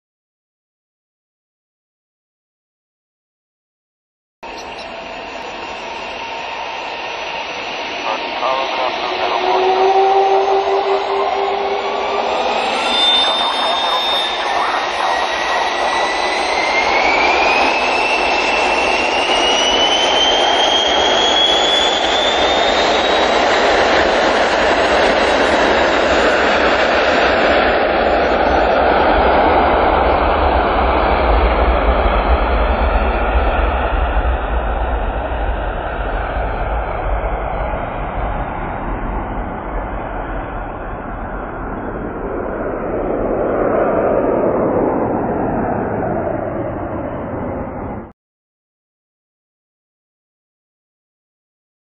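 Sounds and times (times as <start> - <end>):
jet engines spooling up: 4.5 - 48.1.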